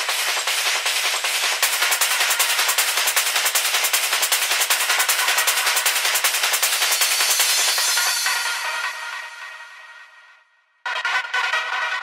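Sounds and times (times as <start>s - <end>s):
hissy percussive hits: 0.0s - 8.9s
hard techno music: 0.0s - 12.0s.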